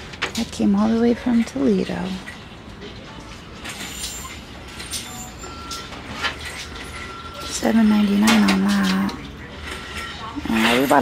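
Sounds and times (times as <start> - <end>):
shop background noise: 0.0 - 11.0.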